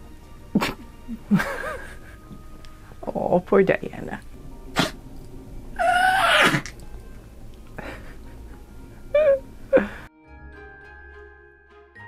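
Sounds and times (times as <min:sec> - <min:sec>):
dog whining: 0:05.8 - 0:06.8.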